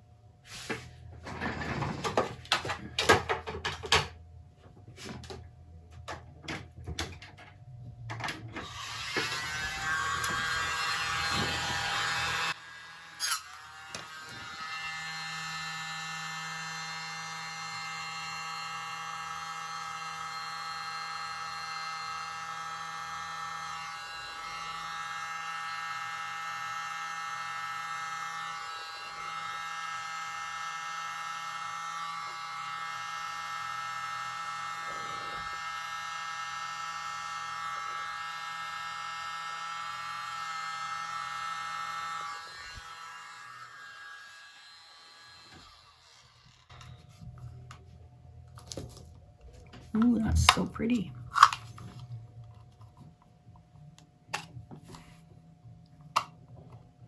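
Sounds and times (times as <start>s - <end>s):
electric mini blower buzzing: 8.6s - 47.8s.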